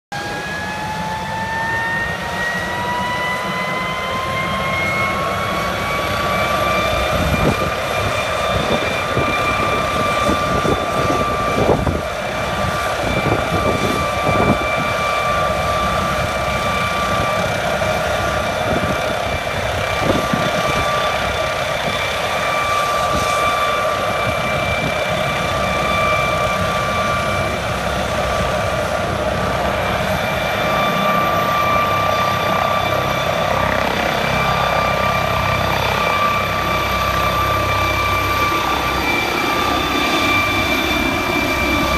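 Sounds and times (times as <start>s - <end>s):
helicopter turbine whine: 0.1s - 41.9s
helicopter rotor turning: 0.2s - 41.9s.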